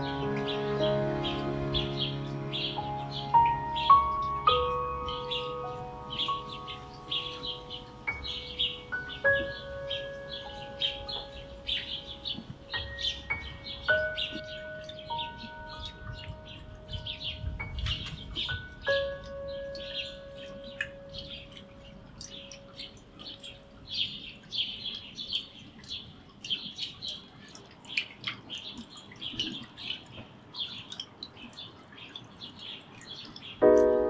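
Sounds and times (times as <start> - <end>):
small birds chirping: 0.0 - 34.0.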